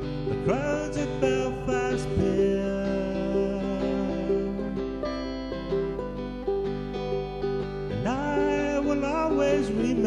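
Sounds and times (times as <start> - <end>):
acoustic plucked strings: 0.0 - 10.0.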